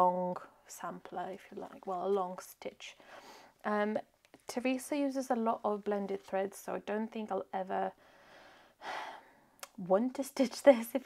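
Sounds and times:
person speaking: 0.0 - 3.0
person drawing breath: 8.0 - 9.4
mouth click: 9.6 - 9.8.

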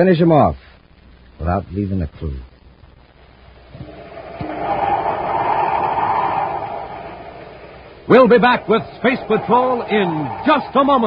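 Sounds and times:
whooshing sound effect: 3.8 - 11.0.

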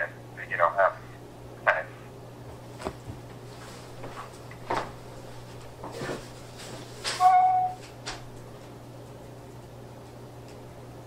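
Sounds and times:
telephone line hum: 7.1 - 8.7.

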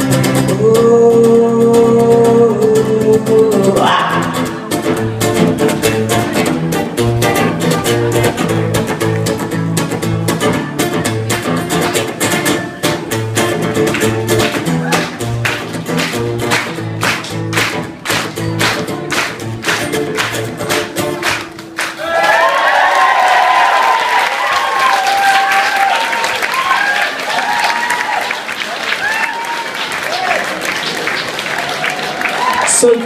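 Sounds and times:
acoustic guitar strumming: 0.0 - 22.0
audience applauding: 13.4 - 33.0
whoops: 14.8 - 15.2, 22.0 - 30.6, 31.6 - 32.8.

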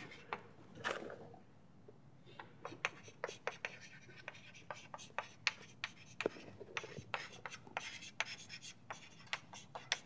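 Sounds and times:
chalk tapping and scratching: 2.6 - 10.0.

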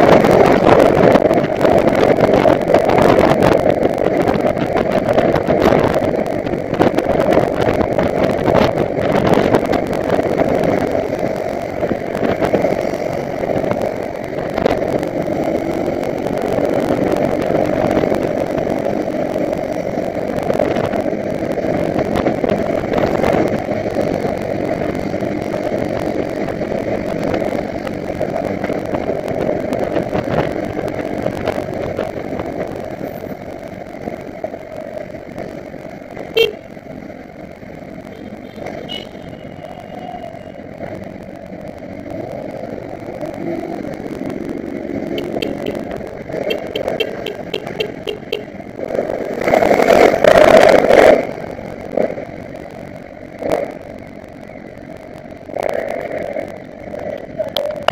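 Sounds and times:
motorcycle engines at low speed: 0.0 - 57.9.

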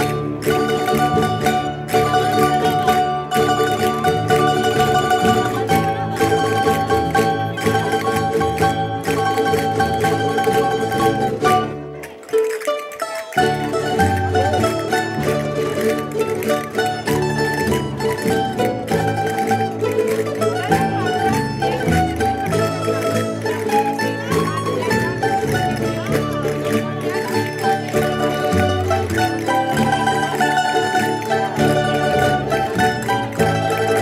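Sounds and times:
plucked-string folk band: 0.0 - 34.0.

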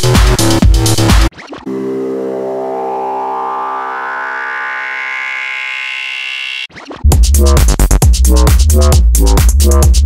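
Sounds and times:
held synthesizer chord: 1.7 - 6.7
slow upward synth sweep: 1.7 - 6.7.

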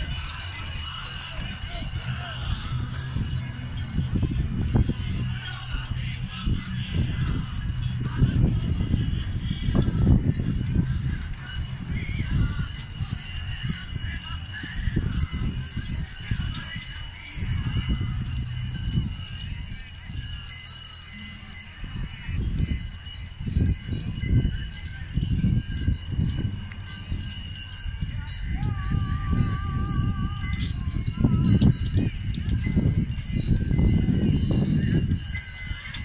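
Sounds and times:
harness bells jingling: 0.0 - 36.0
low rumbling noise: 0.0 - 36.0.

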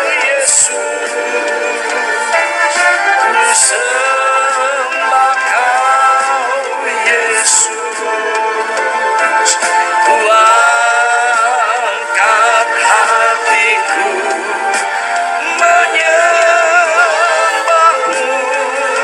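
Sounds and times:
group singing with vibrato: 0.0 - 19.0.

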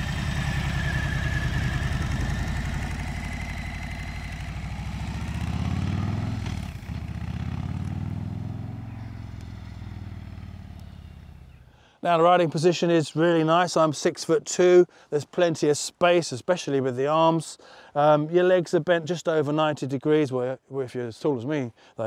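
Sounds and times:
motorcycle engine passing by: 0.0 - 11.7.

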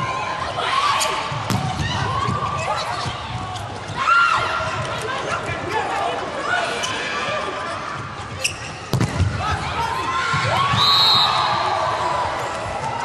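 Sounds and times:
players and crowd shouting: 0.0 - 7.9, 9.2 - 13.0
volleyball hit: 1.4 - 2.4, 8.9 - 9.4
ball thuds: 8.9 - 9.4
short high whistle: 10.8 - 11.5.

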